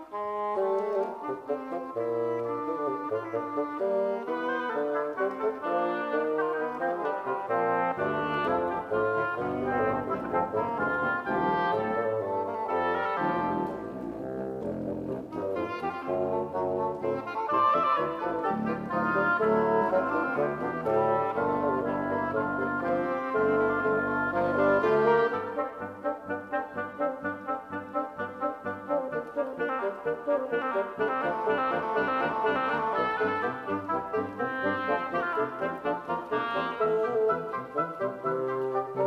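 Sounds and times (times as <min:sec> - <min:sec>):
bassoon: 0:00.0 - 0:39.0
contrabassoon low bass notes: 0:00.0 - 0:39.0
oboe: 0:00.0 - 0:39.0.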